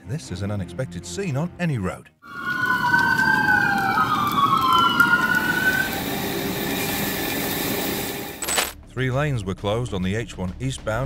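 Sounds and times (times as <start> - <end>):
emergency siren wailing: 2.2 - 8.3.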